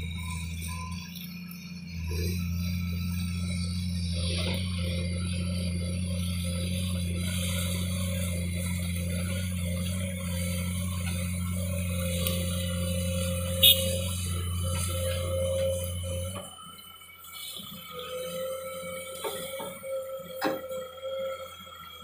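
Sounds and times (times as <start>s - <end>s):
heavy diesel machinery droning: 0.0s - 22.0s.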